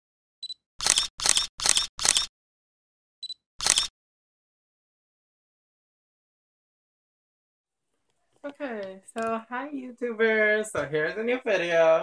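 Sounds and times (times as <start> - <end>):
camera focus beep: 0.4 - 2.3, 3.2 - 3.9
camera shutter releases: 0.8 - 2.3, 3.6 - 3.9.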